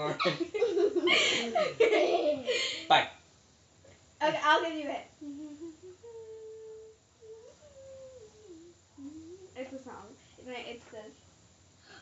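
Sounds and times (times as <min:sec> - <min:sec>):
child humming a tune: 0:05.2 - 0:10.0.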